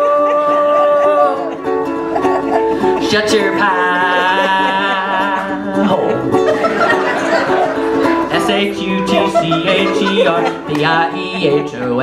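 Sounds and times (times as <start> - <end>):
strummed ukulele: 0.0 - 12.0.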